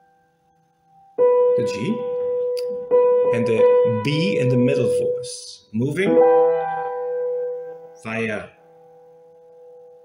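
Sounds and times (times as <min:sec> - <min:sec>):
piano chord ringing: 0:01.0 - 0:10.0.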